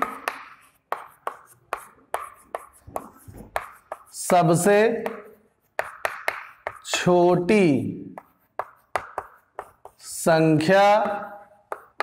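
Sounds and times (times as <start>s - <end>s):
chalk scratching: 0.0s - 12.0s
chalk tapping on chalkboard: 0.0s - 12.0s.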